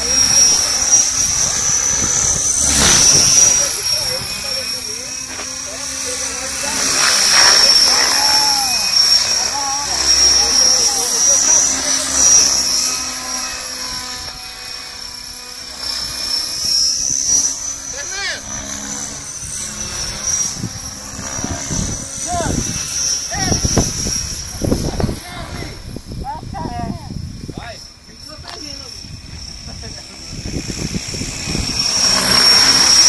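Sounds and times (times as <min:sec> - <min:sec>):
model helicopter whine: 0:00.0 - 0:33.0.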